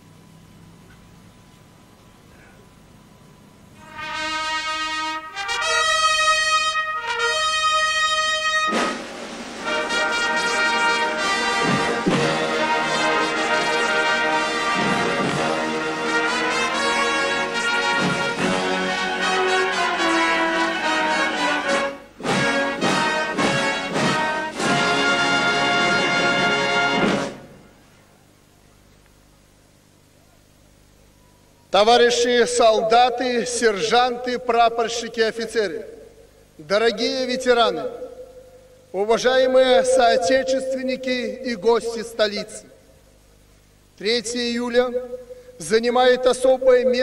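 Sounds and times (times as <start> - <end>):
military brass band playing: 3.8 - 27.8.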